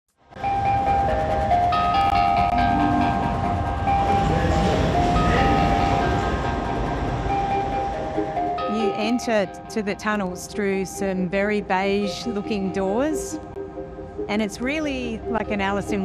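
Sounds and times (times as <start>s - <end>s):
train rumble: 0.3s - 16.0s
high held tones shifting pitch: 0.4s - 16.0s.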